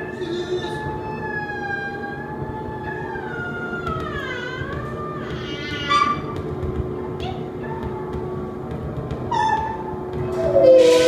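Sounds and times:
musical saw wavering tone: 10.4 - 11.0.

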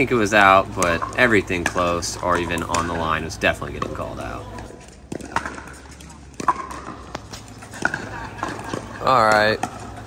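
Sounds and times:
balls bouncing on hard court: 0.0 - 10.0
paddles striking balls: 0.0 - 10.0.

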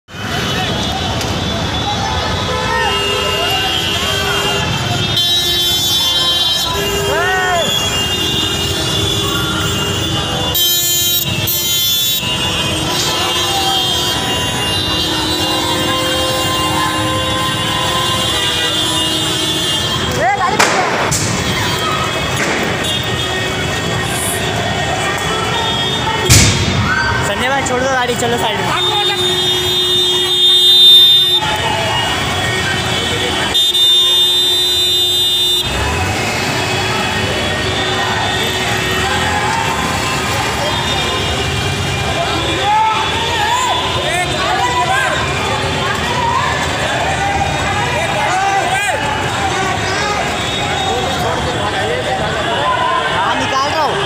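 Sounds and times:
crowd noise: 0.0 - 54.0
street traffic: 0.0 - 54.0
vehicle horn blasts: 2.3 - 20.2, 28.7 - 39.0.

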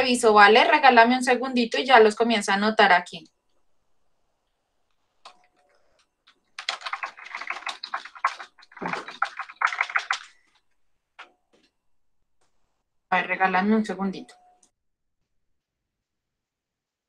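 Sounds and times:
rapid typing on keyboard: 5.2 - 10.6.

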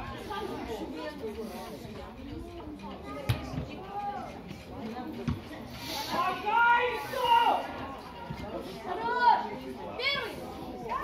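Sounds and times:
background chatter: 0.0 - 11.0
young voices shouting: 6.2 - 7.8.

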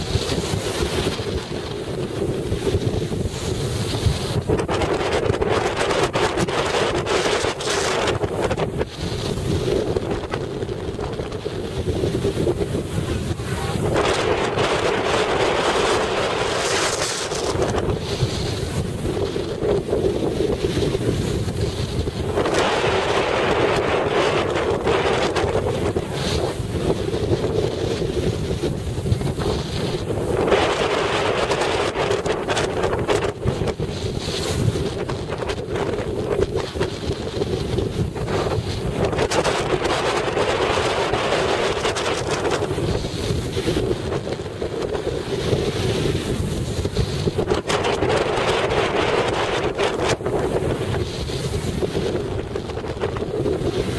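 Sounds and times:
wind blowing across microphone: 0.0 - 53.9.

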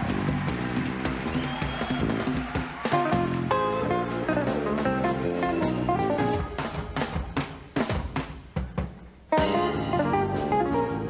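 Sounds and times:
live band music: 0.0 - 11.0
plucked banjo notes: 3.0 - 7.1, 9.3 - 11.0.

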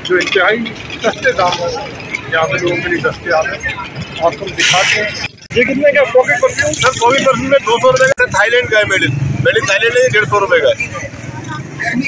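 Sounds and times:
men talking: 0.0 - 12.0
steady outdoor background noise: 0.0 - 12.0.

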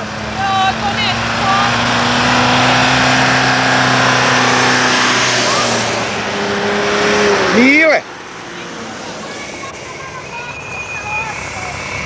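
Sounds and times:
rising pitched sound: 0.0 - 12.0
vehicles driving past: 0.0 - 12.0.

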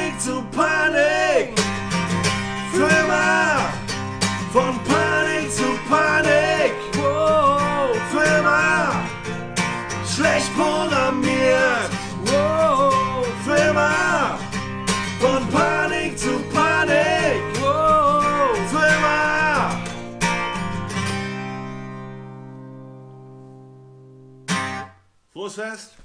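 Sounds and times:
man singing: 0.0 - 1.7, 2.6 - 9.3, 9.9 - 19.9
acoustic guitar strumming: 0.0 - 25.1.

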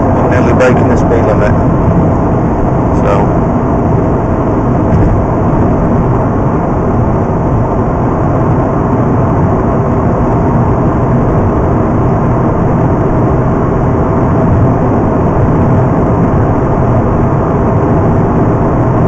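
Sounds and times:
tyre and road noise: 0.0 - 7.8
rotary engine running steadily: 0.0 - 19.0.

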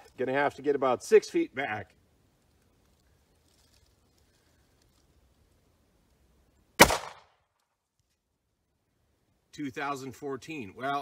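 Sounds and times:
pistol shot: 6.8 - 7.4.

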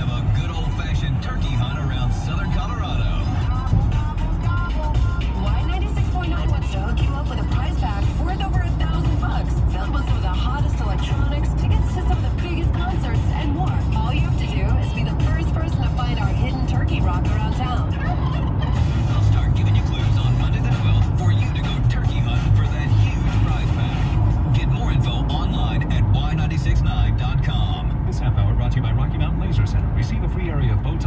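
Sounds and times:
radio playing talk and music: 0.0 - 31.0
truck engine and road noise: 0.0 - 31.0.

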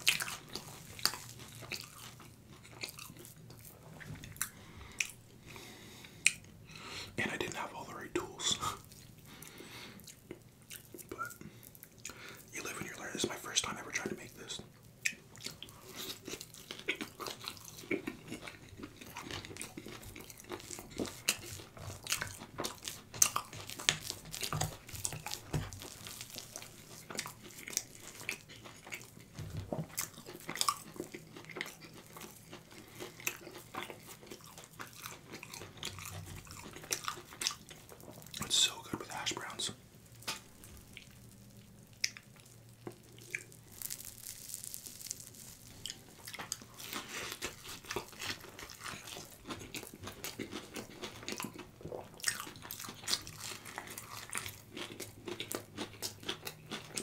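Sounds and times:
soft food crunches: 0.0 - 6.6, 13.9 - 57.0
close-miked chewing and mouth sounds: 0.0 - 57.0.

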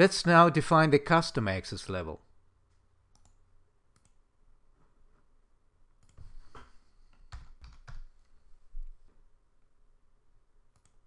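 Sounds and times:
faint computer mouse clicks: 2.7 - 4.2, 10.7 - 11.0.

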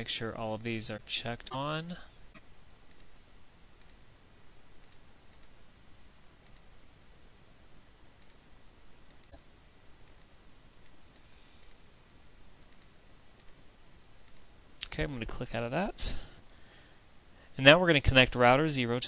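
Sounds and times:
low steady hiss: 0.0 - 19.0.

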